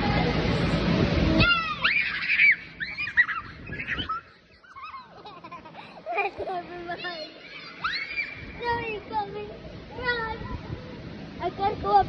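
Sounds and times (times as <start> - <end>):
children squealing and shrieking: 1.4 - 6.4, 7.0 - 9.1.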